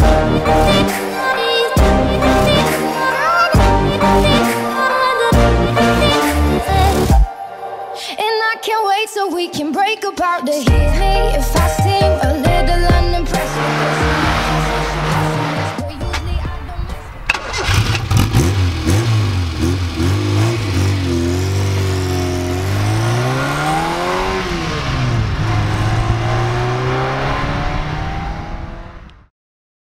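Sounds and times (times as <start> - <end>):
car engine revving: 0.0 - 7.2, 12.5 - 29.3.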